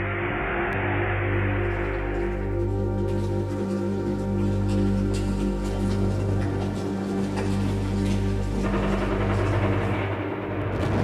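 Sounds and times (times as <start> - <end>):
low background music notes: 0.0 - 11.0
artillery booms: 10.6 - 11.0.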